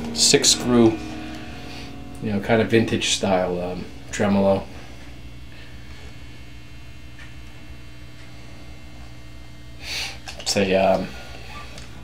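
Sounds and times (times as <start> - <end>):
guitar amp mains hum: 0.0 - 12.0.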